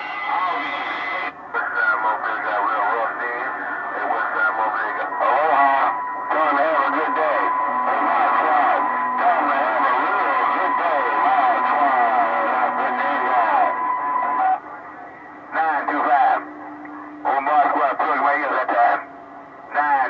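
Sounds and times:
unclear radio voices: 0.0 - 20.0
steady whistle tones: 4.8 - 19.8.

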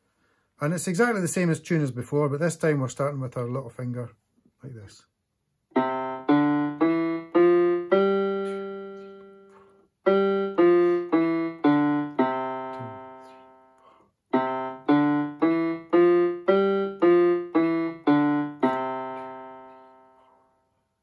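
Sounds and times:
electronic keyboard piano notes: 5.7 - 20.4.

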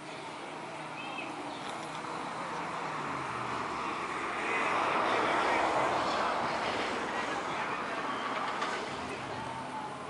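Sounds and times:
faint distant voices: 0.0 - 10.0
vehicle passing: 0.6 - 10.0.

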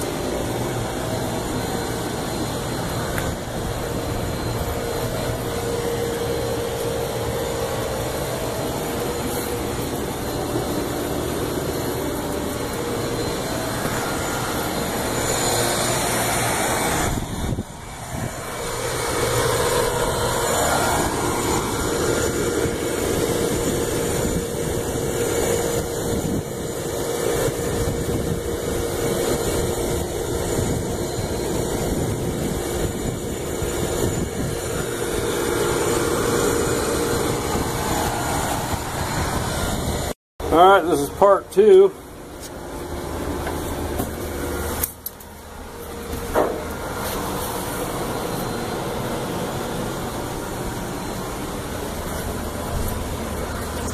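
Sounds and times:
air conditioning unit running: 0.0 - 53.9
faint hum: 0.0 - 53.9.

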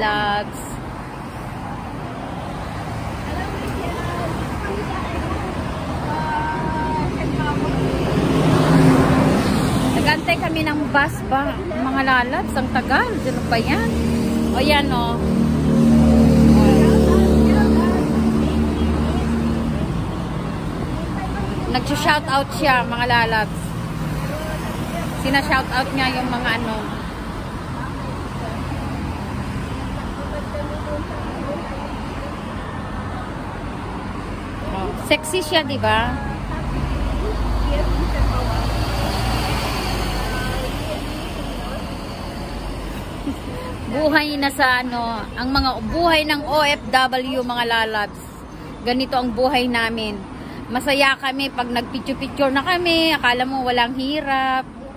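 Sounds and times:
large vehicle engine humming: 0.0 - 48.7.

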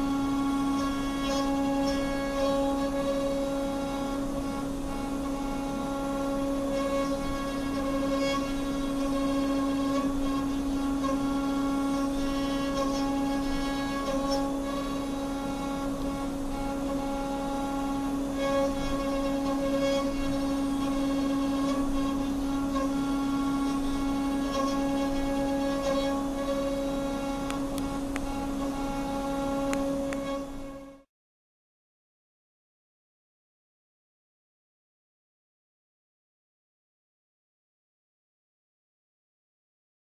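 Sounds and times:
milling machine whine: 0.0 - 31.0.

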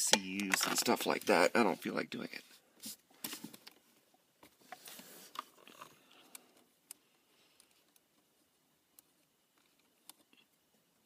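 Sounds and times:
faint clicks and scrapes: 2.4 - 10.6.

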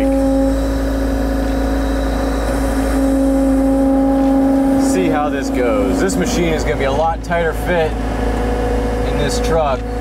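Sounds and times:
track loader engine running: 0.0 - 10.0.

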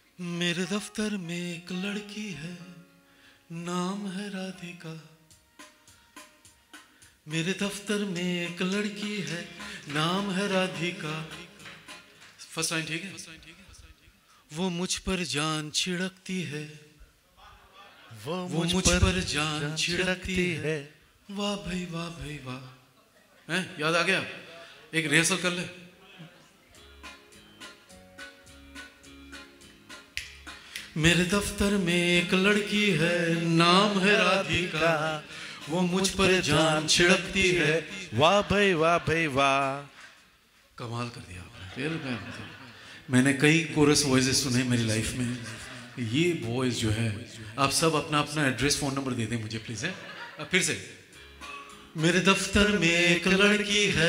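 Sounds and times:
man singing into a microphone: 0.2 - 2.8, 3.5 - 5.1, 7.3 - 11.6, 12.4 - 17.0, 18.1 - 22.8, 30.9 - 39.9, 51.9 - 54.0
finger-snap beat: 11.2 - 12.5, 29.6 - 31.0.

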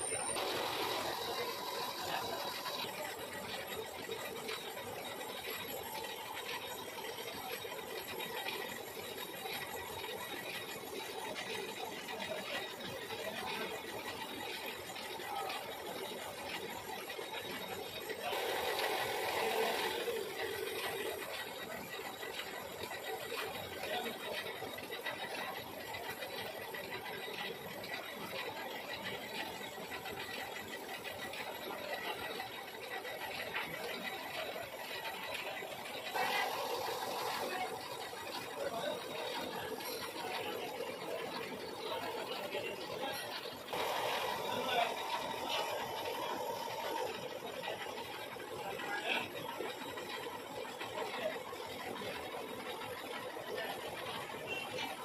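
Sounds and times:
metal lathe running: 0.0 - 55.0.

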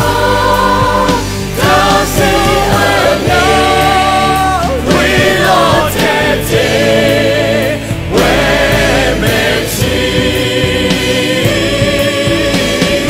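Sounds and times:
large choir singing: 0.0 - 13.0
low musical accompaniment: 0.0 - 13.0.

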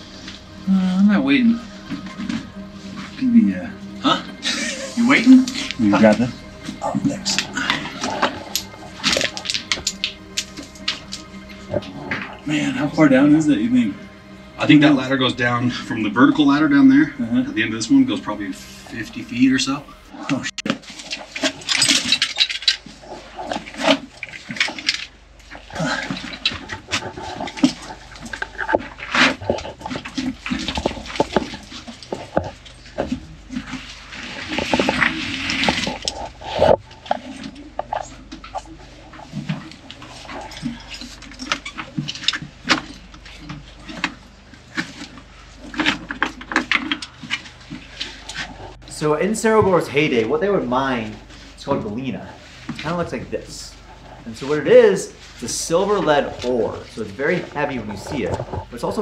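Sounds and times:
breaths and grunts: 0.0 - 13.3, 25.6 - 31.6
gravel crunching and scraping: 0.0 - 59.0.

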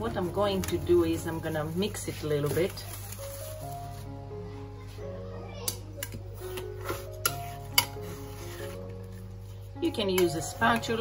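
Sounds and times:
plastic wrap crinkling: 0.0 - 4.2
soft background music: 0.0 - 11.0.

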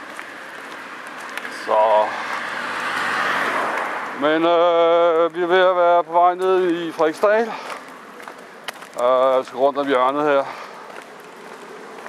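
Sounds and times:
car driving past: 0.3 - 5.1.

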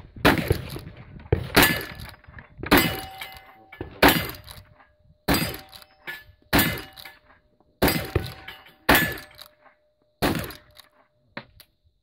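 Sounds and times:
rifle shots with echo: 0.2 - 2.1, 2.7 - 4.6, 5.3 - 5.8, 6.5 - 7.0, 7.8 - 9.5, 10.2 - 10.8.

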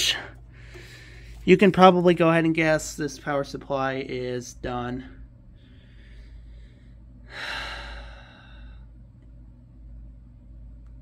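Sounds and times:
low steady hum: 0.0 - 11.0
faint breath: 0.5 - 1.4, 5.5 - 8.9.

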